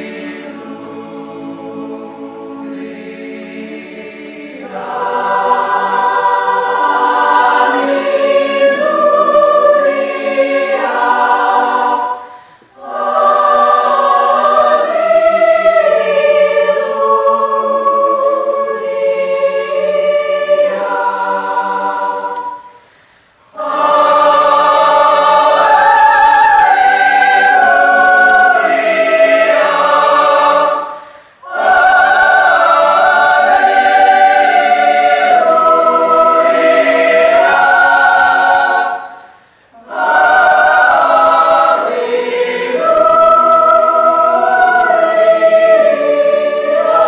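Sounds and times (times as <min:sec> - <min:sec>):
mixed choir singing unaccompanied: 0:00.0 - 0:47.0.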